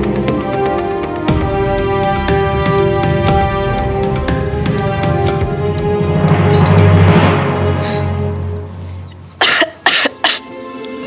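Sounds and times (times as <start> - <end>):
background music: 0.0 - 11.0
woman coughing: 9.4 - 10.5.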